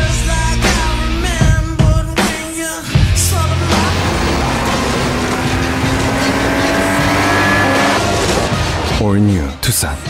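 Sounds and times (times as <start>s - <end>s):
engine accelerating: 3.0s - 8.9s
tyre and road noise on dirt: 3.0s - 8.9s.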